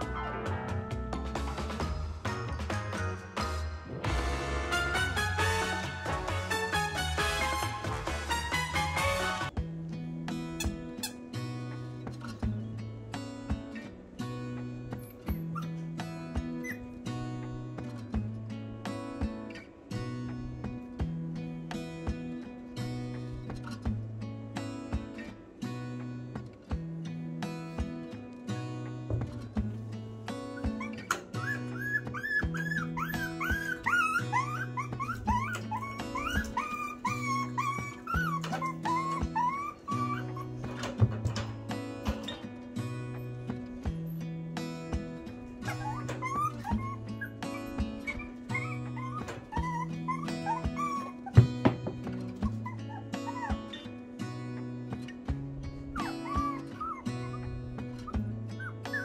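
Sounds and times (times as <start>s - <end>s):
acoustic guitar music: 0.0s - 59.0s
dog whimpering and whining: 15.0s - 17.0s, 30.5s - 42.3s, 45.4s - 54.8s, 55.8s - 59.0s.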